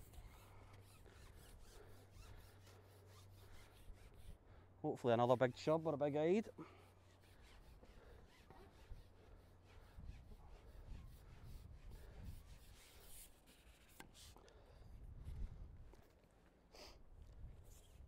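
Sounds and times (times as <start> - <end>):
wind rumble on microphone: 14.8 - 16.0, 17.2 - 18.0.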